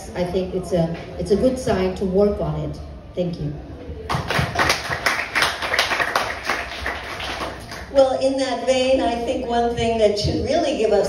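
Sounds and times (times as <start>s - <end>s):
audience applauding: 4.1s - 7.9s.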